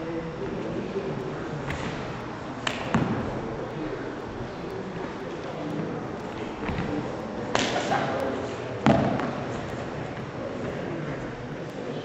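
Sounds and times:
sharp hand slaps: 7.5s - 8.0s.

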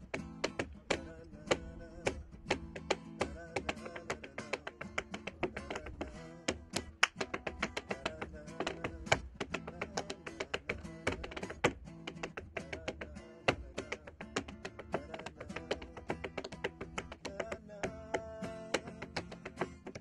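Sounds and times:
acoustic guitar: 0.0s - 20.0s
tap shoes on tap board: 0.0s - 20.0s.

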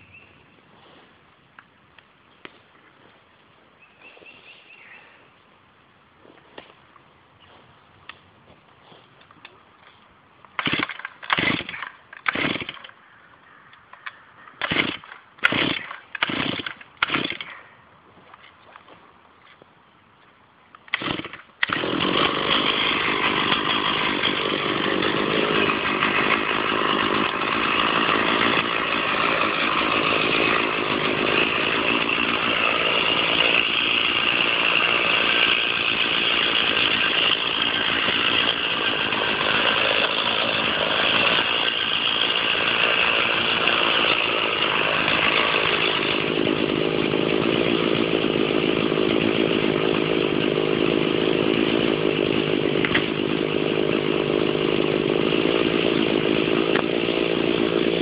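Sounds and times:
chainsaw cutting wood: 8.8s - 13.0s, 14.0s - 17.7s, 20.8s - 58.0s.

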